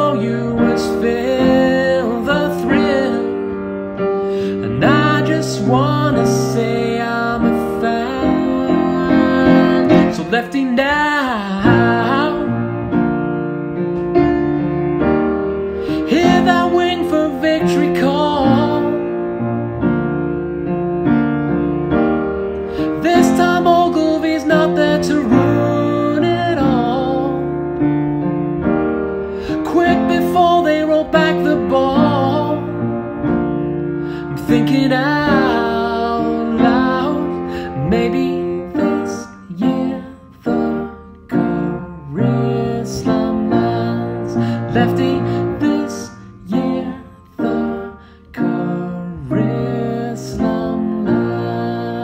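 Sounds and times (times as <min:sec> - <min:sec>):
man singing: 0:00.0 - 0:13.2, 0:15.8 - 0:19.5, 0:22.7 - 0:27.8, 0:29.4 - 0:52.0
upright piano chords: 0:00.0 - 0:52.0.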